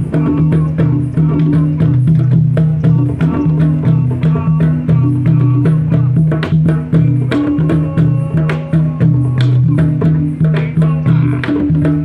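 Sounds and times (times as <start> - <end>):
hand drums playing fast rhythm: 0.0 - 12.0.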